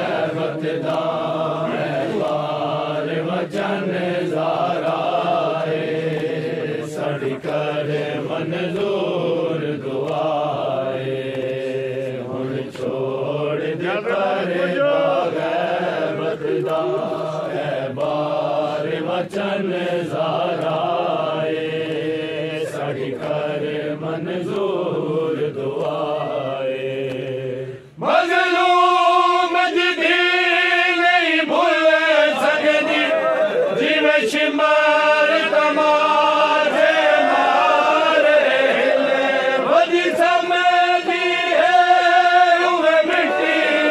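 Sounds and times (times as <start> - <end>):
men chanting a lament: 0.0 - 43.9.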